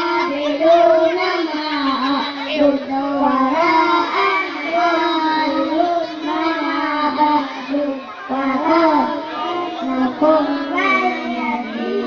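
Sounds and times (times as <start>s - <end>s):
boys chanting into microphones: 0.0s - 12.0s.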